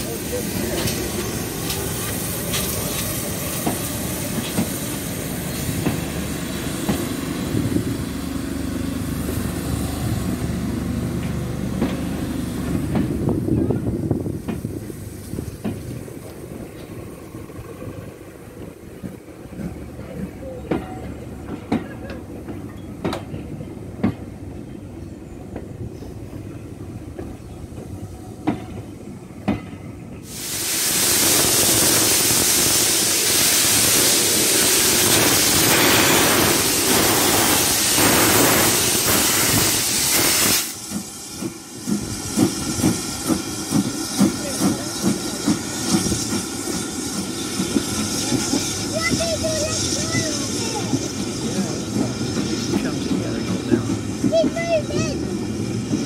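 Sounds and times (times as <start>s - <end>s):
steam hissing: 0.0s - 10.8s, 30.2s - 56.0s
steam locomotive chuffing: 0.0s - 56.0s
train rolling past: 0.0s - 56.0s.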